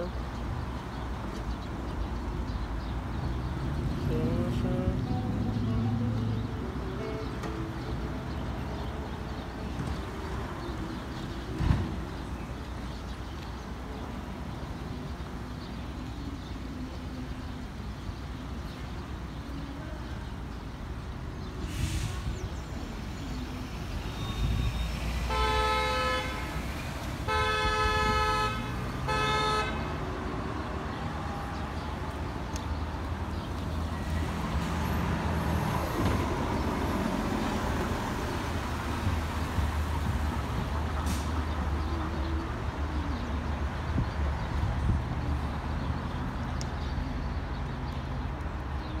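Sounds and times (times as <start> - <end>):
street traffic: 0.0 - 49.0
car horn honking: 24.2 - 26.6, 27.2 - 30.0.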